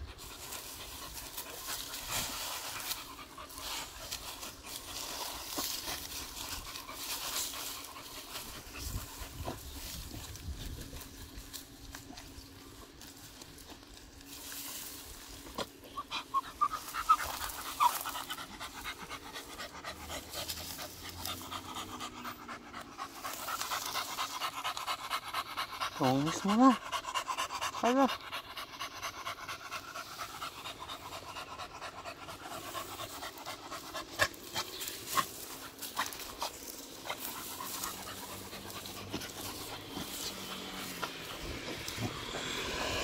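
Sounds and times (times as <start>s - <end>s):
dog panting: 0.0s - 13.8s, 14.4s - 43.0s
grass rustling: 0.0s - 43.0s.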